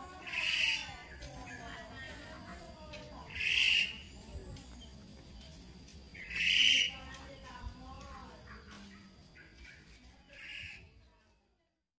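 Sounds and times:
baby monkey squealing: 3.3 - 4.1, 6.2 - 6.9.

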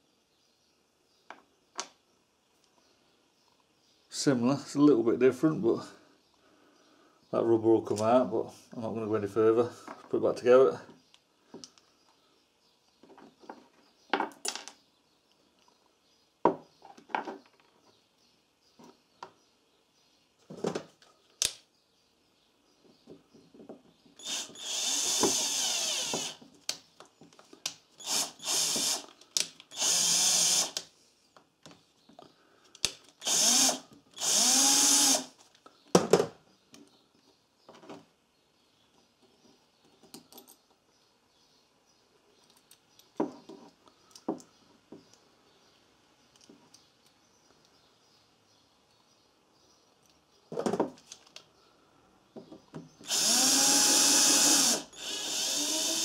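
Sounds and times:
electric screwdriver whirring: 24.2 - 26.4, 28.0 - 29.1, 29.7 - 30.8, 33.2 - 35.3, 53.0 - 56.0.

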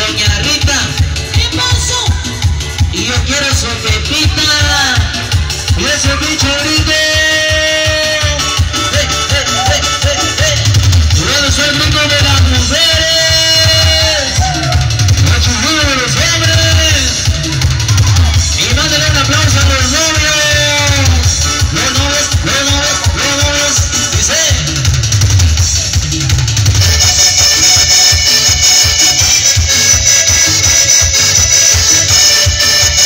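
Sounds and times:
keyboard lead melody: 0.0 - 33.0
live dance music: 0.0 - 33.0
pounding bass and drum beat: 0.0 - 33.0.

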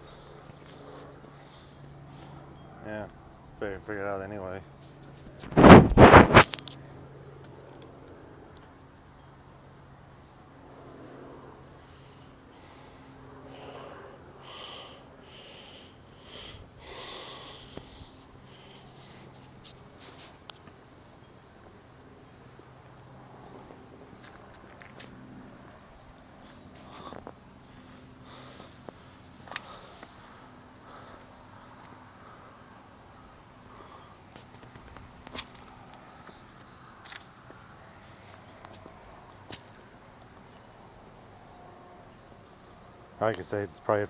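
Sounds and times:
insect chirping: 0.0 - 44.0
insects buzzing high: 0.0 - 44.0.

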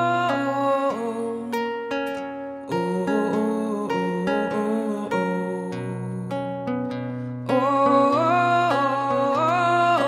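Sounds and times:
acoustic guitar plucking: 0.0 - 10.0.

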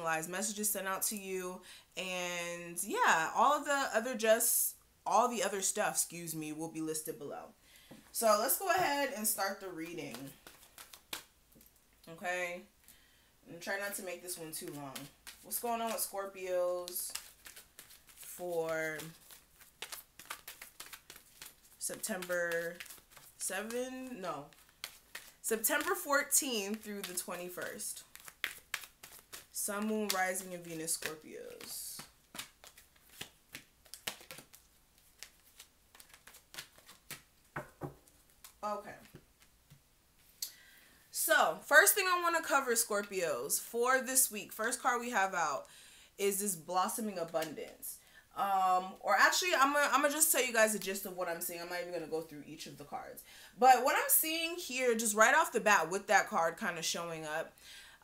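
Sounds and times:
cards clicking and rustling: 9.8 - 11.7, 14.5 - 16.1, 16.8 - 39.8.

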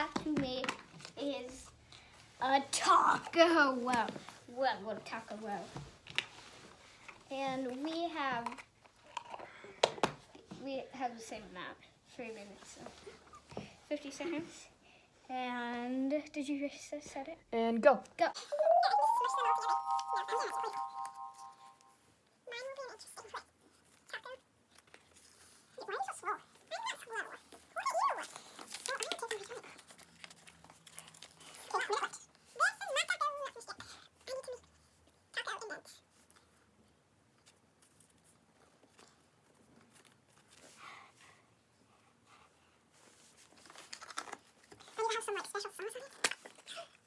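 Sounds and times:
paper crinkling: 28.1 - 31.8, 43.2 - 46.7.

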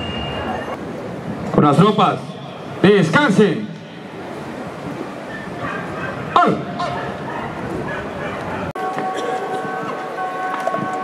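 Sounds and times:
outdoor crowd murmur: 0.0 - 11.0.

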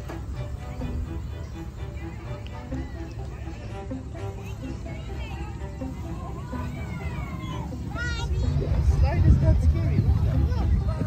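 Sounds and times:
background music: 0.0 - 11.0
children calling out: 4.2 - 8.8.

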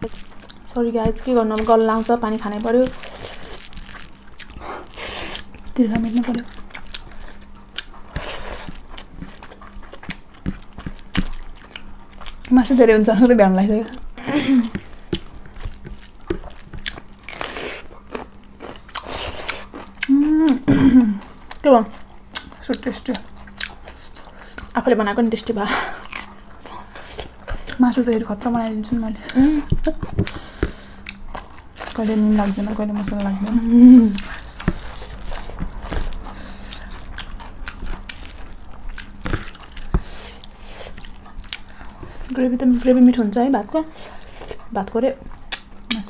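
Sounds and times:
crunching cucumber: 0.0 - 12.9, 14.6 - 20.7, 26.0 - 43.0
faint steady hum: 0.0 - 46.0
chewing and lip smacks: 2.4 - 12.5, 14.6 - 20.6, 21.2 - 24.8, 29.2 - 42.9, 44.4 - 46.0.

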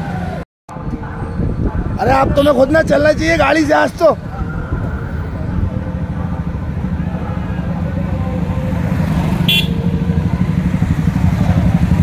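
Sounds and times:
motorcycle engines running: 1.0 - 12.0
horn toot: 9.4 - 10.0.

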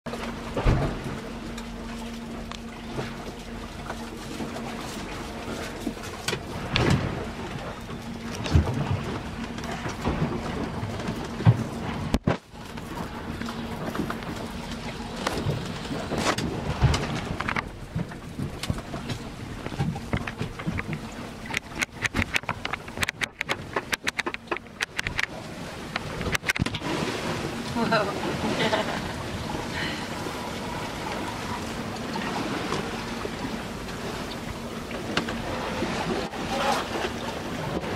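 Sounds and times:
steady rumbling in boat cabin: 0.0 - 37.9
clicks and rattles: 16.2 - 25.3, 25.9 - 26.8
knocks and clatters: 16.2 - 25.3.

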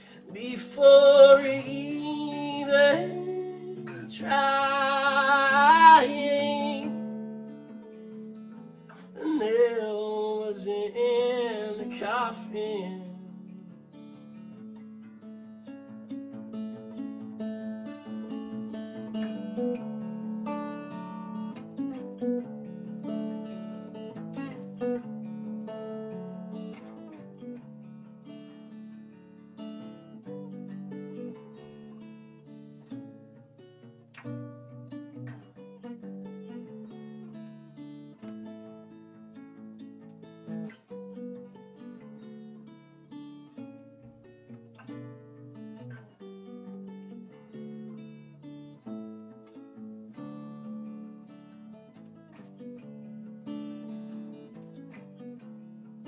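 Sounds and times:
fingerstyle acoustic guitar: 0.0 - 56.0.

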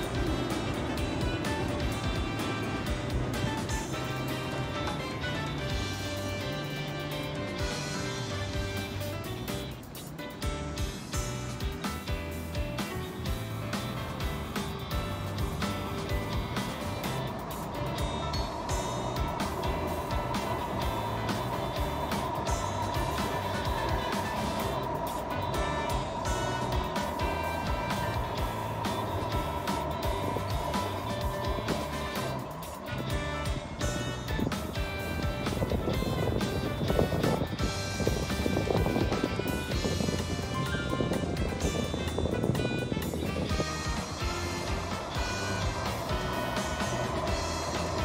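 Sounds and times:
light background music: 0.0 - 48.0
train crossing steel bridge: 0.0 - 48.0.

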